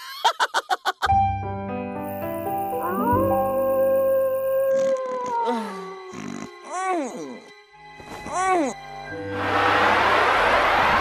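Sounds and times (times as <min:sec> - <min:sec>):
music: 0:01.1 - 0:11.0
cartoon wolf howl: 0:02.8 - 0:05.8.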